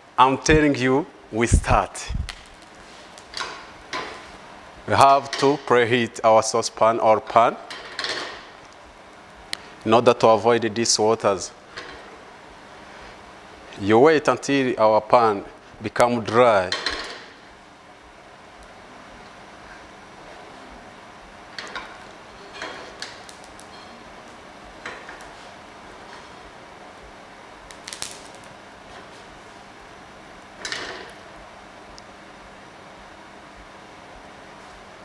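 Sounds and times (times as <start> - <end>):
gas burner hiss: 21.6 - 29.8.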